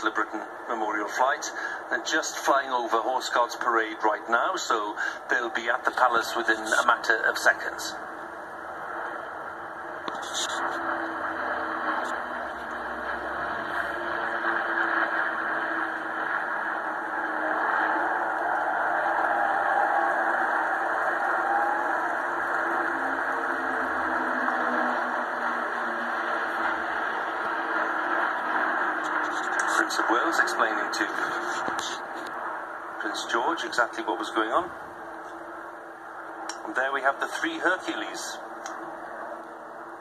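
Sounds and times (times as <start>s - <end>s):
muffled aircraft engine drone: 0.0s - 40.0s.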